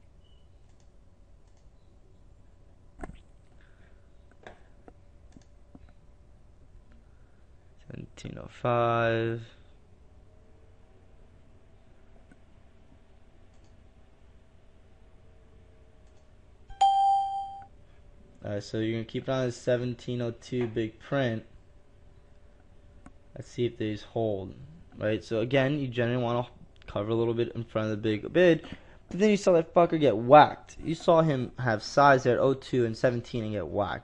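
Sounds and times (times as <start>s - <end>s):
steady low hum: 0.0s - 34.0s
faint clicks: 0.6s - 1.7s, 13.5s - 13.8s, 16.0s - 16.3s
bell-like electronic chime: 16.7s - 17.7s.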